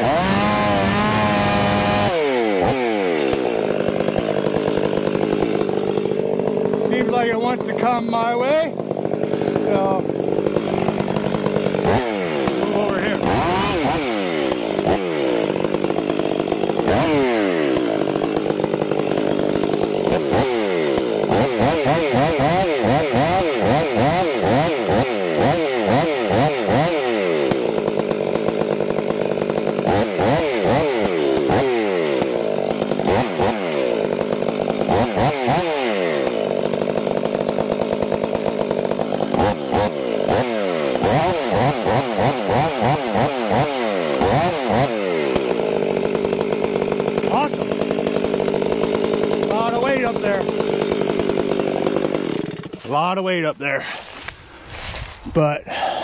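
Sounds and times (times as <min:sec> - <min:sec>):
chainsaw cutting log: 0:00.0 - 0:56.0.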